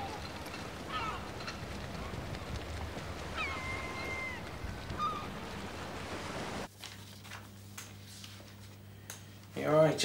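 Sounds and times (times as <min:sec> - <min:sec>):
bird calling: 0:00.0 - 0:06.0
low wind: 0:00.0 - 0:06.7
water rumble: 0:00.0 - 0:06.7.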